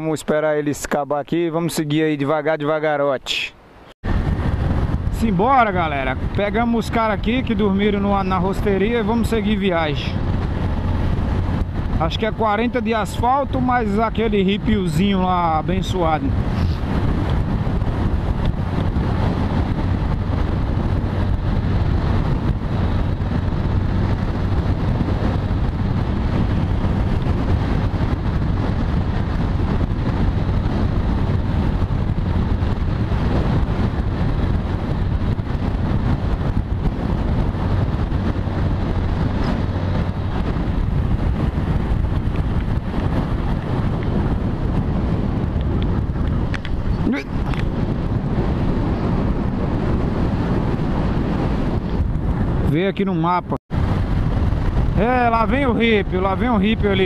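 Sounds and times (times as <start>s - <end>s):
wind rushing over microphone: 0.0s - 57.0s
motorcycle engine drone: 4.0s - 52.9s, 53.7s - 57.0s.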